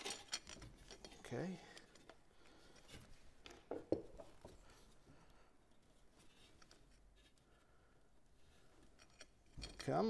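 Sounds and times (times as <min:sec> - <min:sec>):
metal chain clicking and rubbing: 0:00.0 - 0:02.1, 0:08.8 - 0:10.0.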